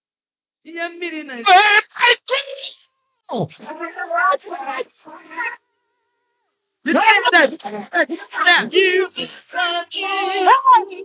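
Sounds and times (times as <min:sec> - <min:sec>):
woman exclaiming: 0:01.3 - 0:02.6.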